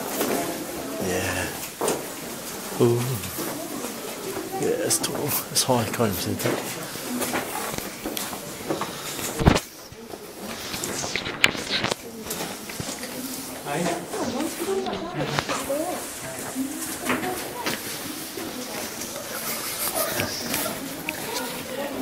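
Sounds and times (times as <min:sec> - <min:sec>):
people chattering: 0:00.0 - 0:22.0.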